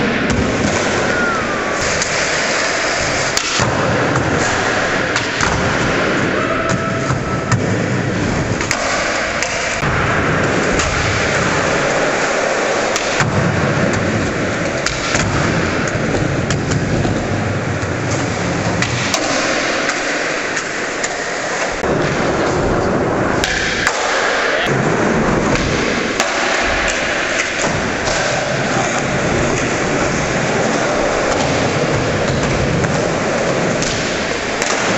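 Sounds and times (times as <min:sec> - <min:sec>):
skateboard sliding on ledge: 0:00.0 - 0:34.9
skateboard wheels rolling on concrete: 0:00.0 - 0:34.9.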